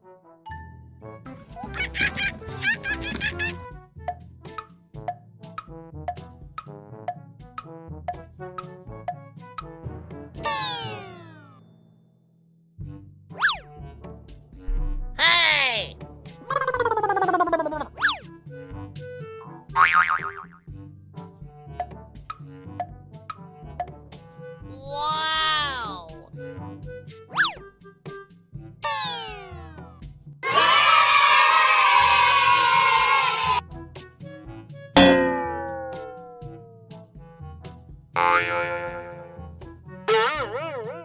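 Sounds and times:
cartoon falling pitch glide: 10.5 - 11.5, 28.8 - 29.6, 35.0 - 36.7, 38.2 - 39.3, 40.1 - 41.0
cartoon zip sound: 10.5 - 11.5, 28.8 - 29.7, 40.1 - 41.0
warbling wobble effect: 35.0 - 36.6.

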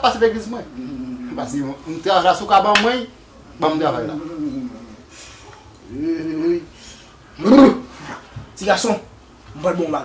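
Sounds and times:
man's wordless vocal tones: 3.7 - 5.1, 5.8 - 6.8.

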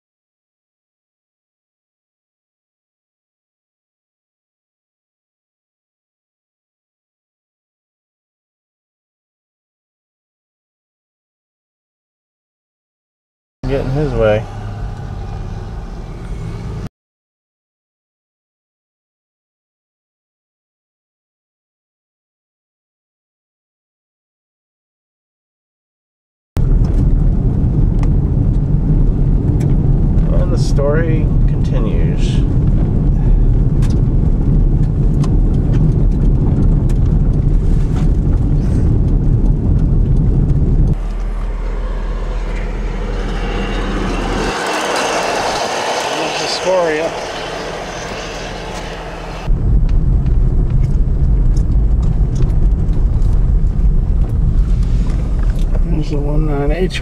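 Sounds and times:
vehicle driving on gravel: 13.6 - 16.8, 26.6 - 57.0.

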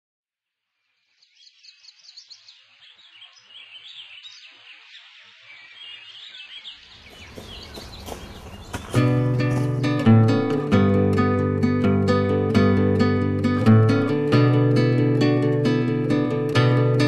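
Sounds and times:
birds chirping: 1.2 - 10.6
music: 8.9 - 17.0.

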